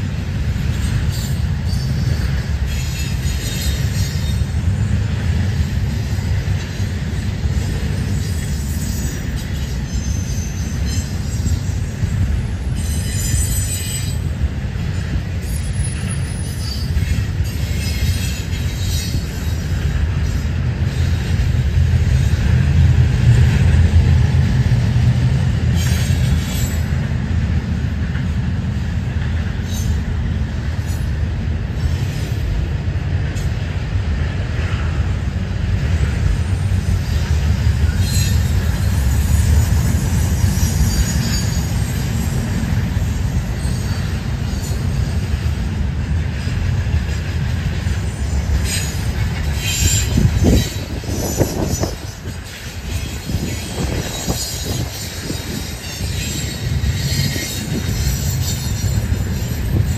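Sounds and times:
train wheels rumbling on rail: 0:00.0 - 0:59.9
high-pitched wheel squeals: 0:08.0 - 0:14.4, 0:37.9 - 0:42.6, 0:48.0 - 0:59.9.

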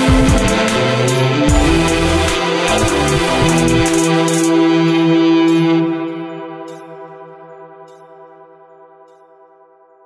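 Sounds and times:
electric guitar note ringing: 0:01.2 - 0:07.9.

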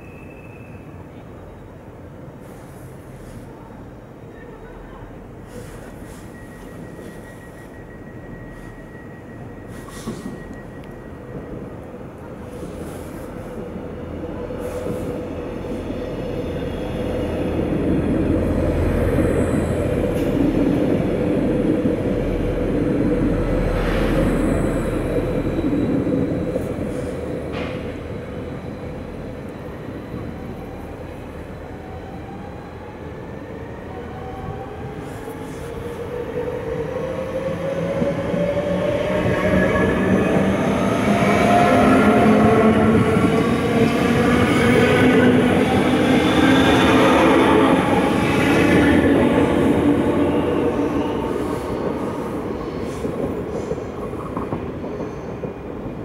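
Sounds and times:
wheels rumbling on rail: 0:05.4 - 0:32.4, 0:34.4 - 0:56.0.

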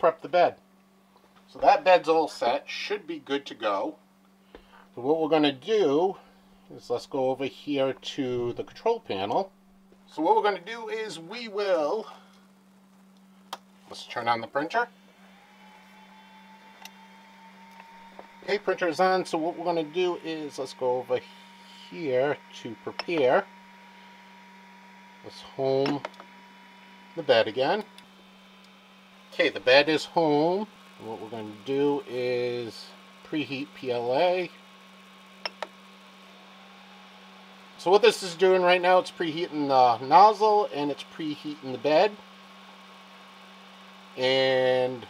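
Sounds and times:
steady low hum: 0:00.0 - 0:45.0
printer thin whine: 0:15.0 - 0:45.0.

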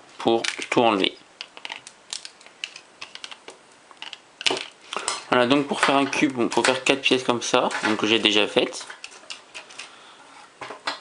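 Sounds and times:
plastic clicks and scratches: 0:01.4 - 0:04.7.

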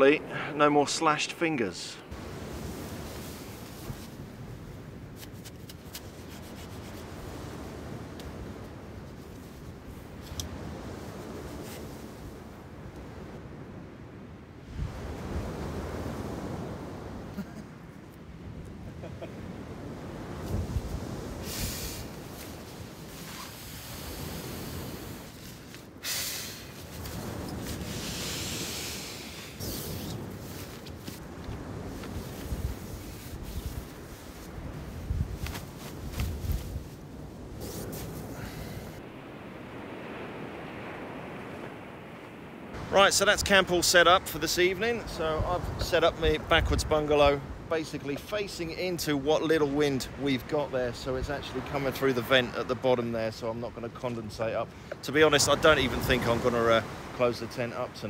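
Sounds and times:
surf: 0:00.0 - 0:58.0
wind: 0:00.0 - 0:58.0
tent fabric rustling: 0:21.6 - 0:38.5.

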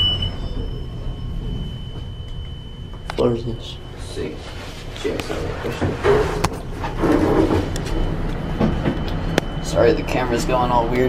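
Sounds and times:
elevator hum: 0:00.0 - 0:11.0.

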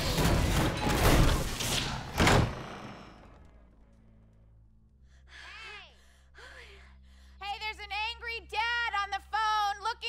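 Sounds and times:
loud slam: 0:00.0 - 0:03.3.

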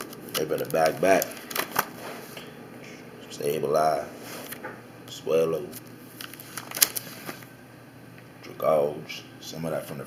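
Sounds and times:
plastic binder pages crackling: 0:00.0 - 0:02.3, 0:05.7 - 0:07.5.

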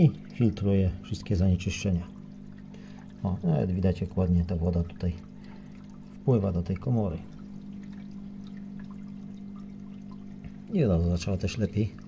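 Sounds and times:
steady low hum: 0:00.0 - 0:12.0
water pouring through filter: 0:00.0 - 0:12.0.

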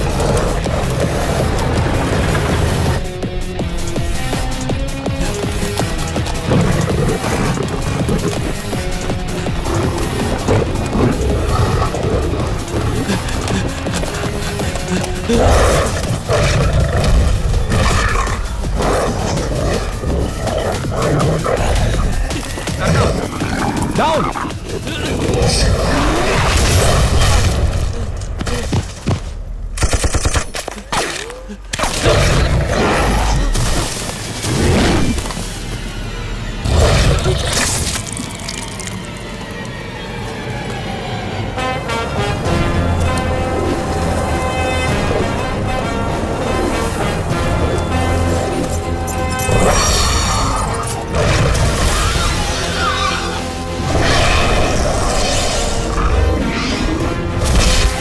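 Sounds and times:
dramatic background music: 0:00.0 - 0:58.0.

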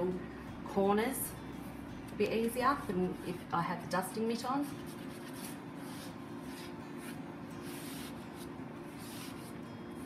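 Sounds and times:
cloth rubbing on windowsill: 0:04.6 - 0:10.0.

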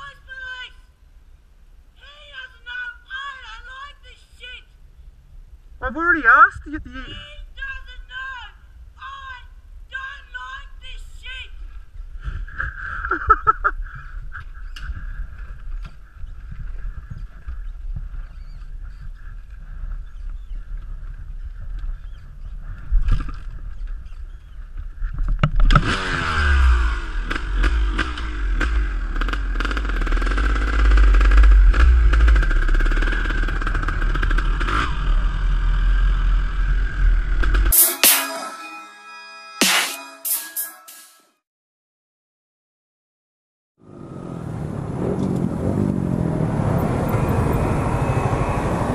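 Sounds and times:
dirt bike engine revving: 0:25.6 - 0:38.2.

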